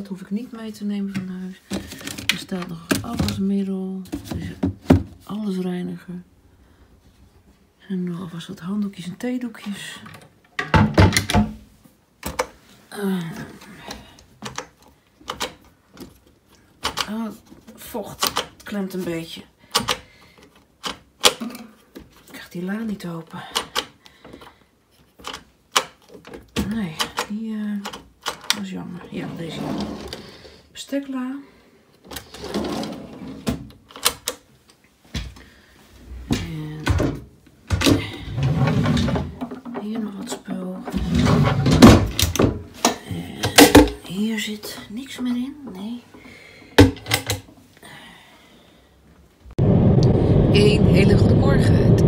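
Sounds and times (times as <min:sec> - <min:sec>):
wooden cabinet doors and drawers rattling: 0:01.1 - 0:05.3, 0:10.2 - 0:12.5, 0:32.1 - 0:34.4, 0:36.1 - 0:44.3, 0:46.8 - 0:47.5.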